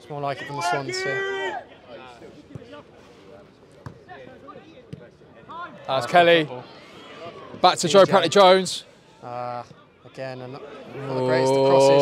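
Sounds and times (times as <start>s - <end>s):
football kicks: 3.8s - 4.0s.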